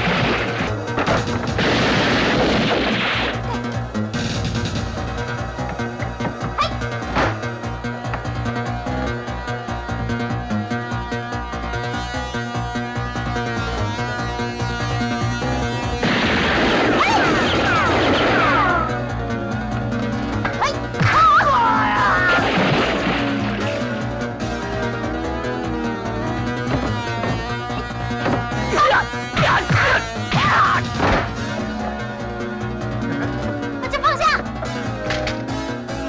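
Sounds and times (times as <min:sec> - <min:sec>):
noisy crash sound effect: 0:00.0 - 0:03.4
action film music: 0:00.0 - 0:36.0.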